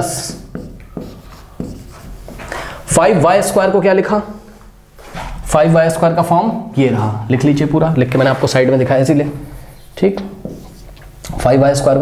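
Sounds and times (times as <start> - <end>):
marker pen writing on whiteboard: 0.0 - 2.6, 9.8 - 11.1.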